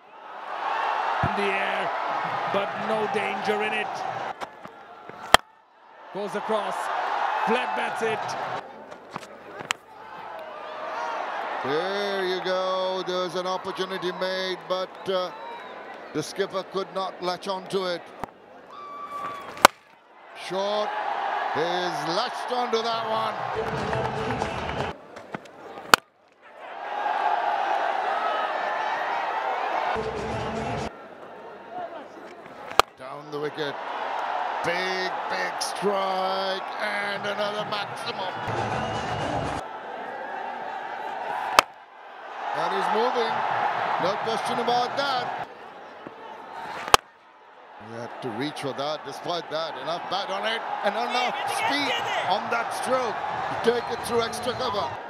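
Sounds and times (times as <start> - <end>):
faint stadium background noise: 0.0 - 55.0
cricket bat hitting ball: 4.4 - 5.5, 19.2 - 19.9, 32.6 - 33.0, 41.5 - 41.8, 46.8 - 47.1
cricket bat striking ball: 19.5 - 19.9, 46.8 - 47.1.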